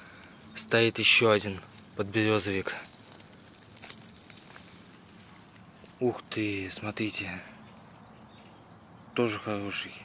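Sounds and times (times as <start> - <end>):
grass stems rustling: 0.0 - 8.7.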